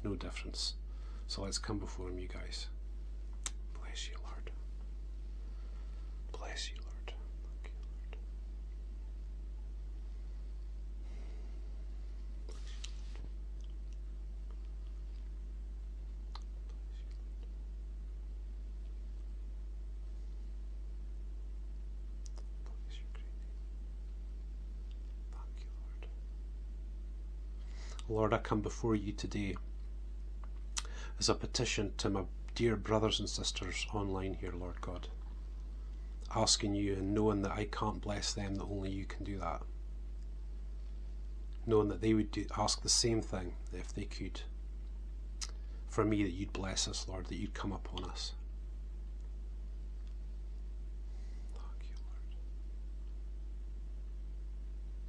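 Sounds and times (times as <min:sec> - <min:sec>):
man whispering: 0:00.0 - 0:02.8, 0:03.5 - 0:04.7, 0:06.2 - 0:08.3, 0:16.4 - 0:17.5, 0:22.3 - 0:23.6, 0:25.3 - 0:26.2, 0:27.8 - 0:29.7, 0:30.8 - 0:35.2, 0:36.2 - 0:39.7, 0:41.6 - 0:44.5, 0:45.4 - 0:48.4, 0:51.5 - 0:52.4
low electrical hum: 0:00.0 - 0:55.0
man breathing: 0:00.8 - 0:01.3, 0:05.3 - 0:06.3, 0:11.0 - 0:11.9, 0:27.6 - 0:28.0, 0:30.8 - 0:31.2
mouth clicks: 0:03.4 - 0:03.6, 0:16.3 - 0:17.5, 0:22.2 - 0:23.3, 0:45.4 - 0:45.6.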